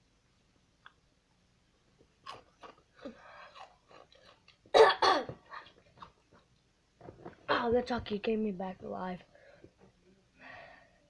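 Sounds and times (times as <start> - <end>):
boy coughing: 4.7 - 5.6.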